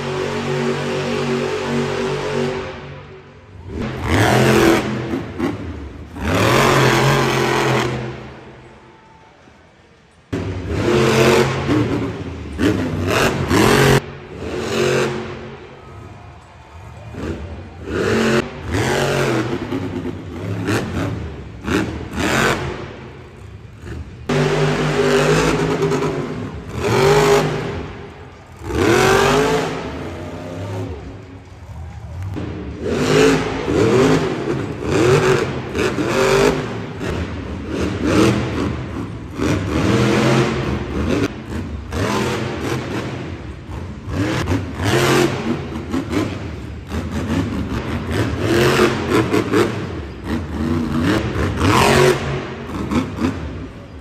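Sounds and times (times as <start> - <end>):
monster truck engines revving: 0.0 - 54.0.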